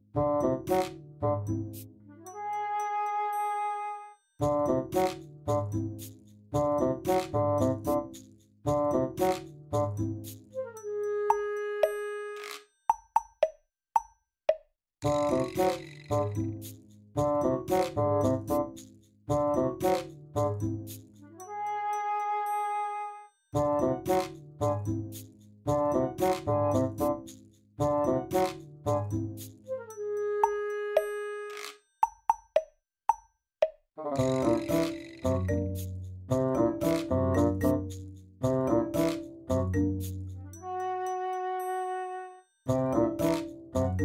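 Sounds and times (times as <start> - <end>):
background music: 0.0 - 12.5, 15.0 - 31.5, 34.1 - 44.0.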